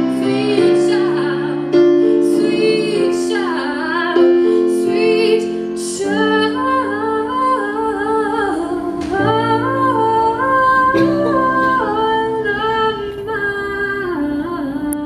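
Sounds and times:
keyboard chords: 0.0 - 14.3
woman singing into microphone: 0.0 - 15.0.

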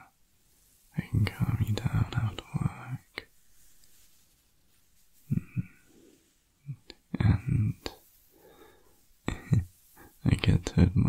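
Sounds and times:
man speaking softly: 0.9 - 3.4, 5.2 - 5.8, 6.6 - 8.2, 9.2 - 11.0.

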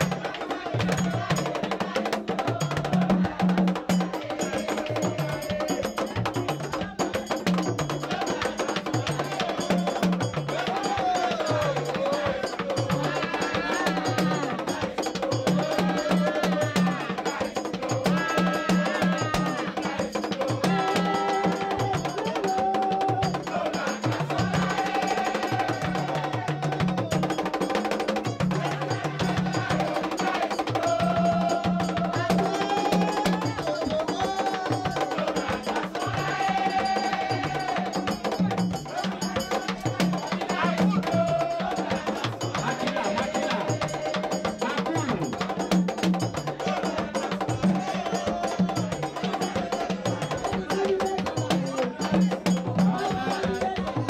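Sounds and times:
drums: 0.0 - 54.0
group singing: 0.0 - 54.0
struck percussion beat: 0.0 - 54.0.

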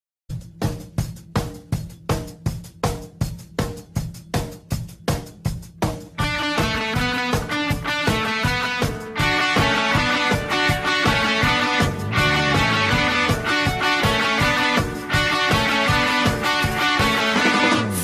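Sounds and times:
sharp rhythmic hits: 0.4 - 18.0
rock band with electric guitar: 6.1 - 18.0.

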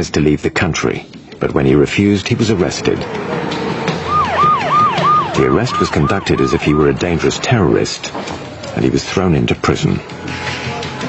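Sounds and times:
siren yelping: 3.8 - 8.8.

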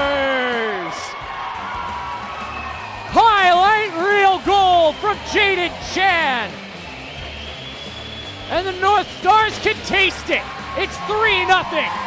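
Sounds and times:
excited commentary: 0.0 - 1.2, 3.0 - 6.7, 8.4 - 12.0.

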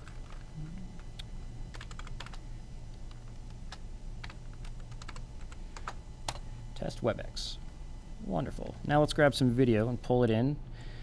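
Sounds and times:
keyboard keys clicking: 1.7 - 2.4, 4.2 - 5.2.

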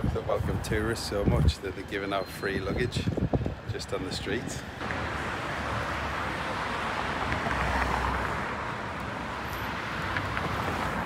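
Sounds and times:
cars passing on road: 0.0 - 11.0
vehicle rumbling past close: 4.8 - 11.0.

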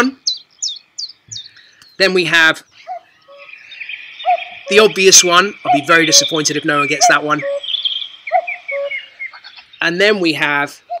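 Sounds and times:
small bird chirps: 0.0 - 11.0
cuckoo call through speaker: 2.8 - 11.0.

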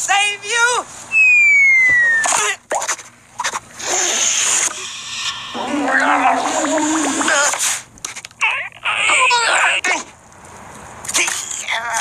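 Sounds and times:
cartoon squirrel whimpering and squealing: 1.1 - 2.5, 8.4 - 9.8.

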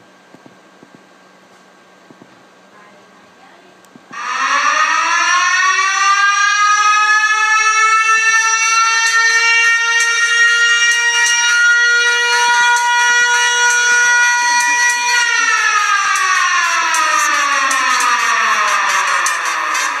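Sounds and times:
civil defense siren wailing: 4.2 - 20.0.

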